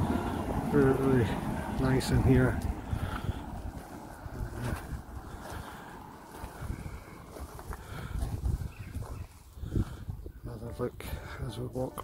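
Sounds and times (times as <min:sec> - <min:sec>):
wind buffeting microphone: 0:00.0 - 0:11.4.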